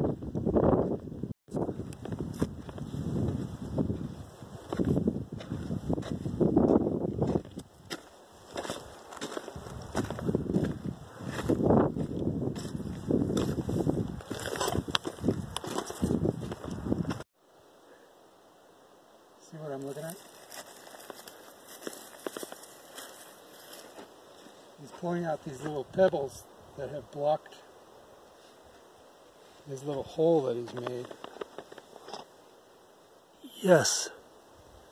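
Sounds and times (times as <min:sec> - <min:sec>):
wind rumbling on microphone: 0:00.0 - 0:17.2
footsteps on gravel: 0:02.0 - 0:17.2, 0:20.0 - 0:25.0.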